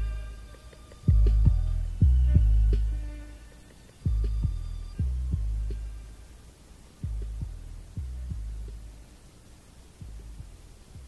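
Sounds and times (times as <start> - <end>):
faint high notes: 0.0 - 7.1
hip-hop beat with bass kicks: 0.0 - 11.0.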